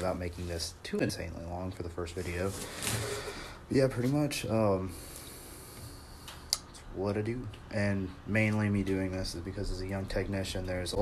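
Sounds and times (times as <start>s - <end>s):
faint background noise: 0.0s - 11.0s.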